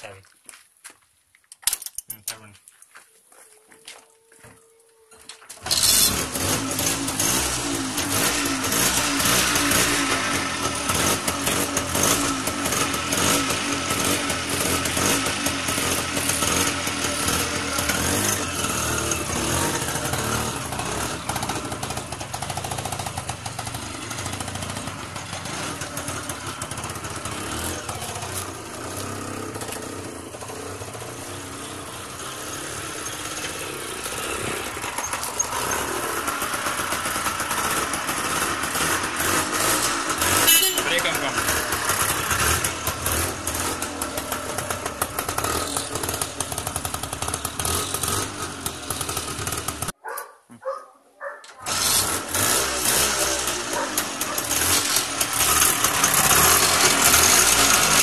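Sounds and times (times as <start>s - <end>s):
two-stroke engine running: 5.6s - 50.8s, 51.6s - 58.0s.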